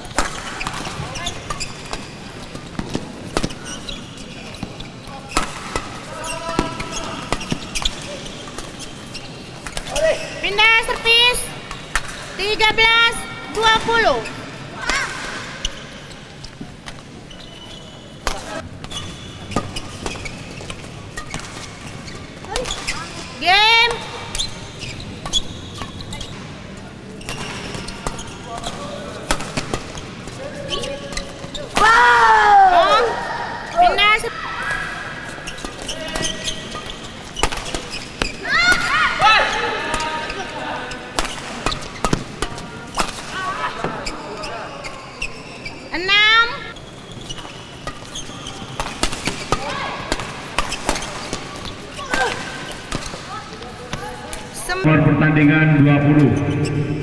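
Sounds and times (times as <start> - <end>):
racket hitting shuttlecock: 0.0 - 3.8, 5.3 - 8.8, 27.2 - 30.4, 35.6 - 39.2, 41.1 - 43.4, 47.4 - 53.3
shoe squeaks: 0.0 - 31.9, 33.7 - 54.8, 56.1 - 57.0
people shouting: 31.7 - 35.3, 38.4 - 40.6.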